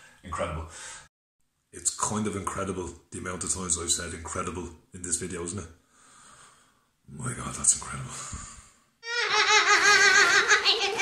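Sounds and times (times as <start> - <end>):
girl shrieking with laughter: 9.0 - 11.0.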